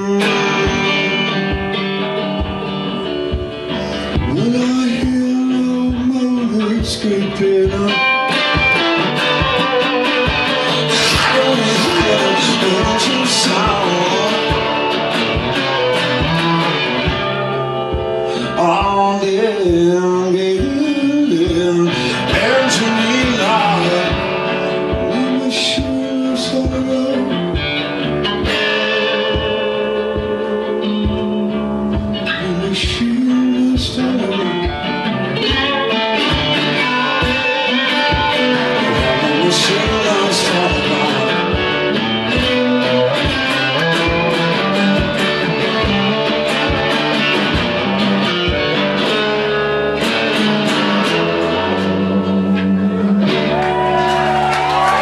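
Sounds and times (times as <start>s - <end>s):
person singing: 0.0s - 3.1s, 3.7s - 17.2s, 17.9s - 27.8s, 29.0s - 48.0s, 50.6s - 55.0s
resonator guitar played hard: 0.0s - 55.0s.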